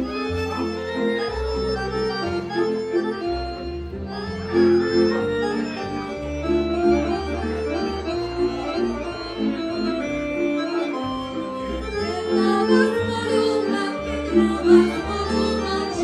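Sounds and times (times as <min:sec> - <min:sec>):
bowed bass line: 0:00.0 - 0:16.0
folk band dance music: 0:00.0 - 0:16.0
violins holding chords: 0:00.0 - 0:16.0.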